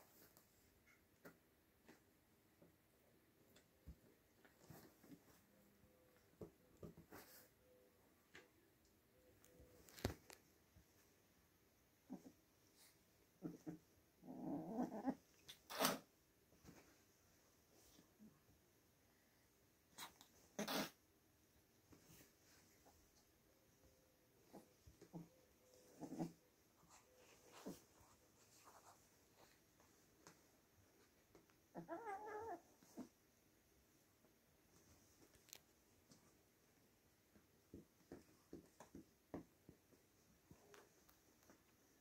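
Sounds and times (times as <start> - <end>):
kitten growling: 13.4 - 16.0, 24.5 - 26.4, 31.7 - 33.1
kittens scuffling: 21.8 - 31.6.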